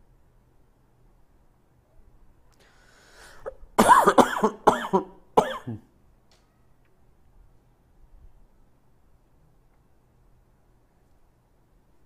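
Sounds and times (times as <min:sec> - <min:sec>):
man coughing: 0:03.4 - 0:05.9.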